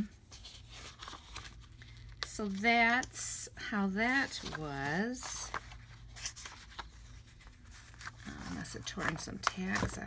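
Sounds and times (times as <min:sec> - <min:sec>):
low steady hum: 0:00.0 - 0:10.0
magazine pages rustling: 0:00.2 - 0:03.1, 0:04.0 - 0:10.0.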